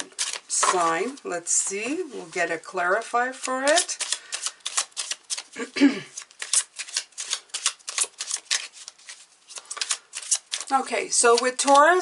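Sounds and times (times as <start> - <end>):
cards being shuffled: 0.0 - 2.4, 3.4 - 12.0.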